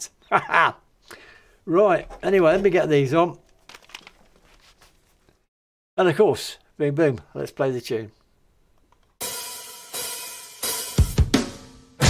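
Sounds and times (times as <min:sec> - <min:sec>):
crash cymbal hits: 0:09.2 - 0:12.0.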